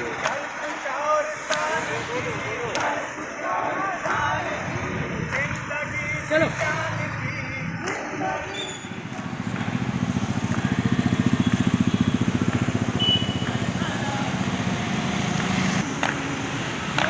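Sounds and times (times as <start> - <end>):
motorcycle engine puttering past: 6.1 - 15.8.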